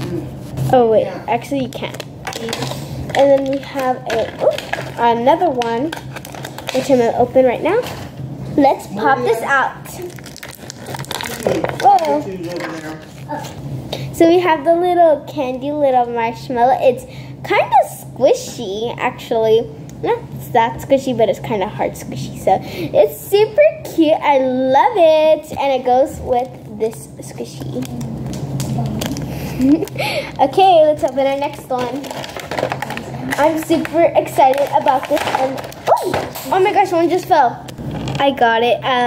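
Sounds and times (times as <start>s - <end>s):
plastic packaging crinkling: 1.8s - 7.2s, 9.9s - 13.3s, 31.0s - 36.3s
girl laughing: 29.4s - 30.3s.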